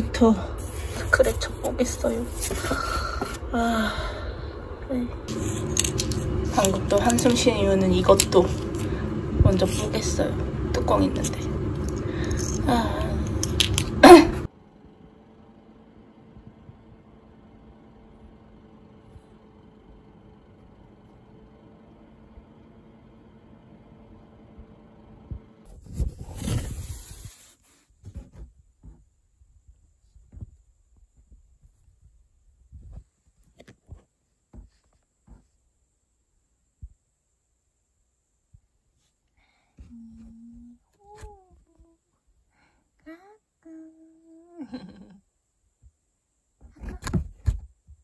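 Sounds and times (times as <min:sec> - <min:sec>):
printer humming: 0:04.4 - 0:25.7.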